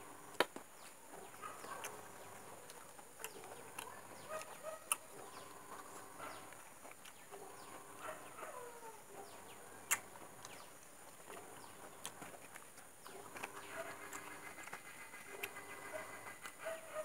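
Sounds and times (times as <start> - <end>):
chewing: 0.0 - 17.0.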